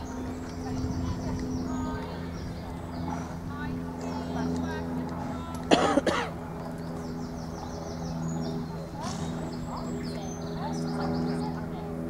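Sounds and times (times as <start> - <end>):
steady low hum: 0.0 - 12.0
person coughing: 5.7 - 6.3.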